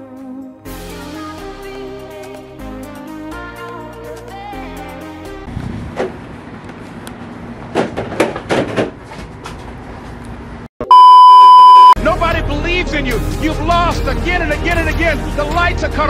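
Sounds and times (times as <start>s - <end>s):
song with singer: 0.0s - 5.4s
electronic beep: 10.8s - 12.0s.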